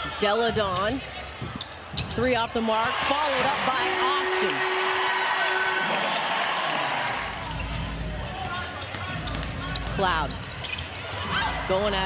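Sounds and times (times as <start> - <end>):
crowd noise: 0.0 - 12.0
sneakers squeaking on hardwood: 0.6 - 2.5, 8.6 - 11.5.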